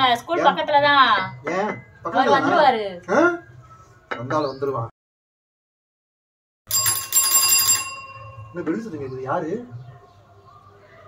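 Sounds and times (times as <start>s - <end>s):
bright bell-like jingle: 6.7s - 8.9s.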